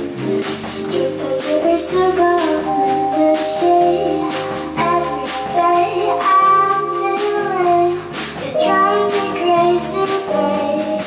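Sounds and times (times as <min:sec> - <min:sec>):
bass guitar: 0:00.0 - 0:11.0
drums: 0:00.0 - 0:11.0
woman singing into microphone: 0:00.6 - 0:11.0.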